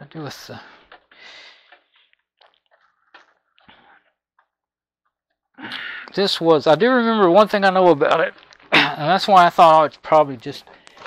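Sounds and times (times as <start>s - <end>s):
scratchy rustles of wiring: 0.0s - 5.2s, 6.0s - 11.0s.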